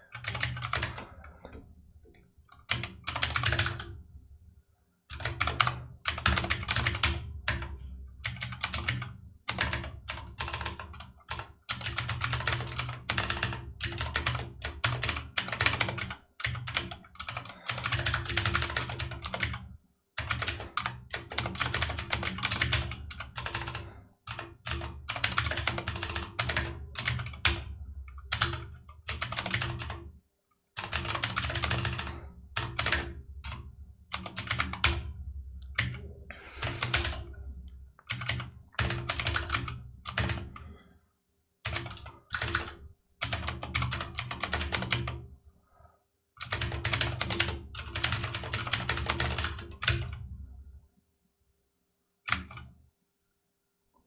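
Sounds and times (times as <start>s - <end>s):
computer keyboard typing: 0.0s - 4.0s, 5.1s - 30.1s, 30.8s - 37.4s, 38.0s - 40.8s, 41.6s - 45.2s, 46.4s - 50.3s, 52.3s - 52.7s.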